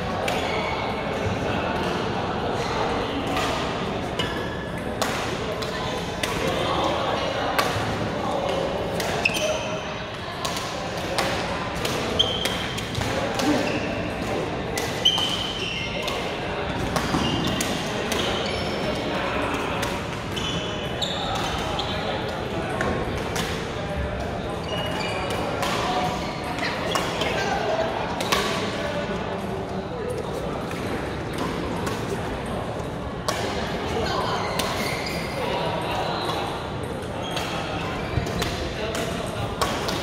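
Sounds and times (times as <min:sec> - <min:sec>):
chatter of players: 0:00.0 - 0:40.0
badminton rackets hitting shuttlecocks: 0:03.2 - 0:06.6, 0:07.6 - 0:09.6, 0:10.4 - 0:18.8, 0:25.2 - 0:28.8, 0:30.6 - 0:32.6, 0:33.2 - 0:35.4, 0:38.2 - 0:40.0
shoes squeaking on court floor: 0:09.0 - 0:09.8, 0:12.0 - 0:14.2, 0:14.9 - 0:16.3, 0:17.0 - 0:19.1, 0:20.3 - 0:22.4, 0:24.5 - 0:27.4, 0:33.3 - 0:38.6.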